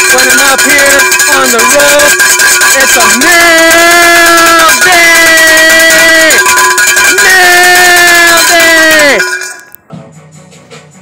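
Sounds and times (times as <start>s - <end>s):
man shouting drawn-out notes: 0.0s - 9.5s
cowbell rattling: 0.0s - 9.8s.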